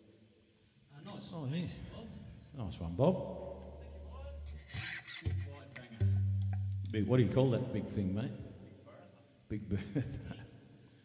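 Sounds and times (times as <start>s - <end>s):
low steady hum: 1.9s - 8.6s
faint voices and laughter: 3.4s - 6.2s.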